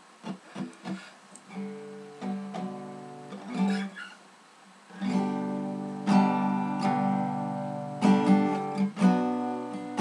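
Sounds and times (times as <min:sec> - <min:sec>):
acoustic guitar chords strummed: 0:00.0 - 0:04.2, 0:04.9 - 0:10.0
acoustic guitar plucks: 0:00.2 - 0:04.2, 0:04.9 - 0:10.0.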